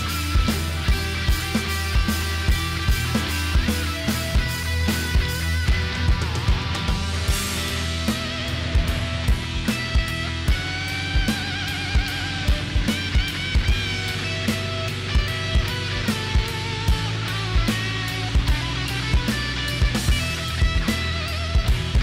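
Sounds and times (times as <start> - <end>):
electric guitar lines: 0.0 - 22.0
steady drum beat: 0.0 - 22.0.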